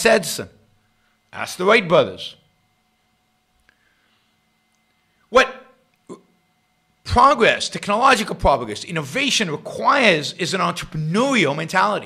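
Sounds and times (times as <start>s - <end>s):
faint steady hum: 0.0s - 12.0s
man saying a word sharply: 5.3s - 5.8s.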